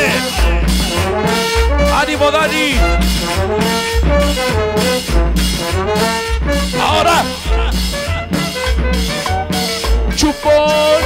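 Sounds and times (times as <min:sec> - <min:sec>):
horn section playing melody: 0:00.0 - 0:11.0
pulsing bass: 0:00.0 - 0:11.0.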